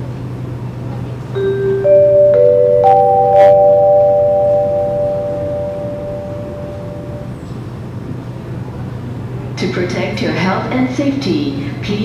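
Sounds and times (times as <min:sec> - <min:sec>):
steady low hum: 0:00.0 - 0:12.0
bell-like chime notes: 0:01.4 - 0:07.4.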